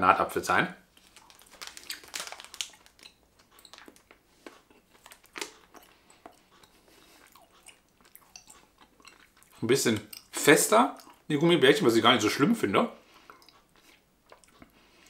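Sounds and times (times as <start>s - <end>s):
person chewing gum: 0.9s - 11.3s, 13.0s - 15.0s.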